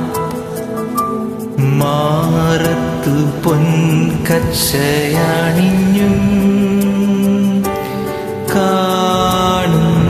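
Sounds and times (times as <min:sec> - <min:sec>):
karaoke backing track: 0:00.0 - 0:10.0
man singing slow song: 0:01.5 - 0:10.0.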